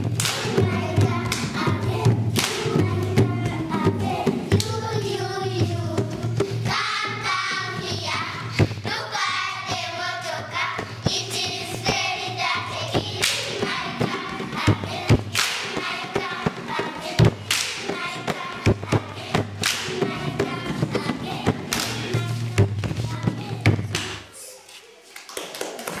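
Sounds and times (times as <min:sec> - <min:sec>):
thumps and claps: 0:00.0 - 0:07.8, 0:10.8 - 0:24.3
young children singing: 0:00.0 - 0:24.6.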